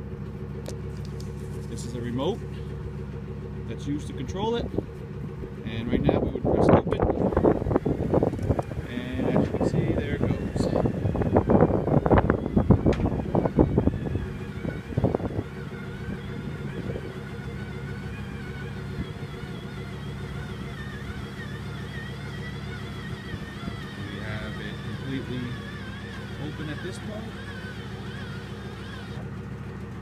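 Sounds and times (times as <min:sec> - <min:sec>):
electric motor humming and whining: 0:00.0 - 0:30.0.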